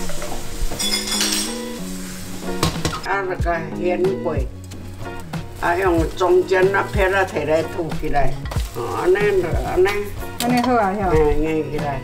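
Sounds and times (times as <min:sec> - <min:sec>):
pan clinking: 0:00.0 - 0:01.8, 0:06.7 - 0:11.1
egg sizzling in a wok: 0:00.0 - 0:03.7, 0:04.5 - 0:10.5
background music: 0:00.0 - 0:12.0.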